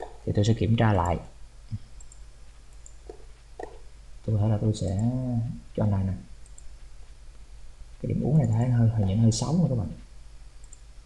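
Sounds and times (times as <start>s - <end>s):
low steady hum: 0.0s - 11.0s
faint computer mouse clicks: 2.0s - 3.8s, 6.4s - 6.8s, 10.6s - 10.8s.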